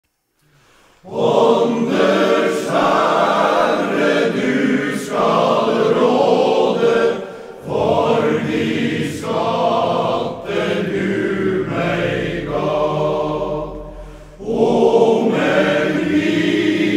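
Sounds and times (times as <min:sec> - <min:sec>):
male voice choir singing: 0:01.0 - 0:16.9.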